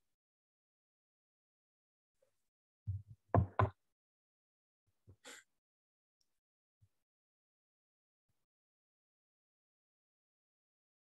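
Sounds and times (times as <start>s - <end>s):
knocks close to microphone: 2.9s - 3.7s.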